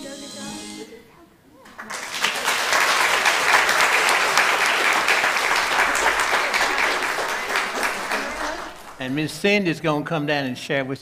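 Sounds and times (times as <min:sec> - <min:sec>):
crowd applauding: 0:01.7 - 0:09.4.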